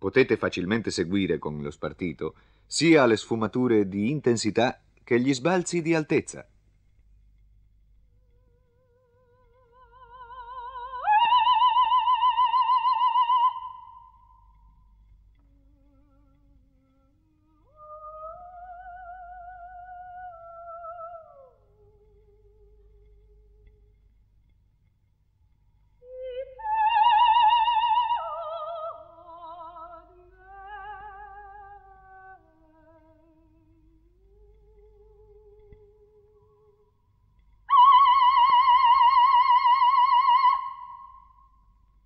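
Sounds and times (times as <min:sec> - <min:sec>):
soprano singing with vibrato: 0:08.8 - 0:14.4, 0:15.8 - 0:24.0, 0:26.0 - 0:36.9, 0:37.7 - 0:41.4.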